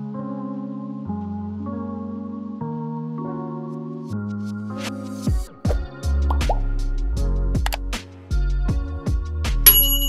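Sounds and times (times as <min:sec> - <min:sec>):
background music with deep bass: 0:00.0 - 0:09.8
rising plop sound effects: 0:05.7 - 0:06.7.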